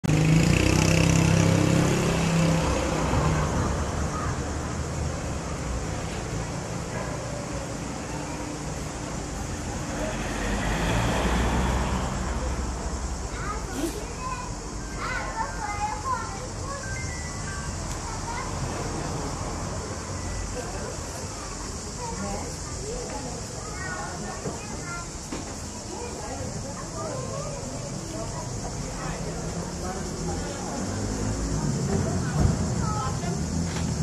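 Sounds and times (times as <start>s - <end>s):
low hum of town noise: 0.0s - 34.0s
people chattering: 0.0s - 34.0s.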